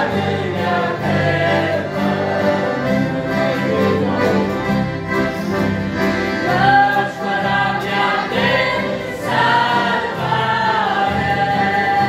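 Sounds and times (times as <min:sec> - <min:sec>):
choir singing a hymn: 0:00.0 - 0:04.7, 0:06.1 - 0:12.0
acoustic guitar: 0:00.0 - 0:12.0
piano accordions: 0:00.0 - 0:12.0.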